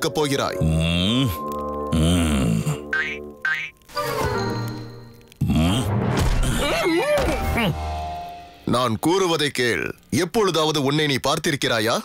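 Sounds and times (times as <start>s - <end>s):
cartoon music: 0.0s - 4.7s.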